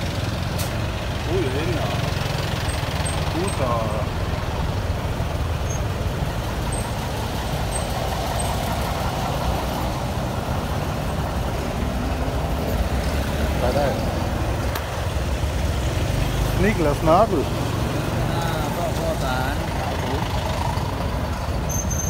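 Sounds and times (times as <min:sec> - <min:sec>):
rumble of buses and cars: 0:00.0 - 0:22.0.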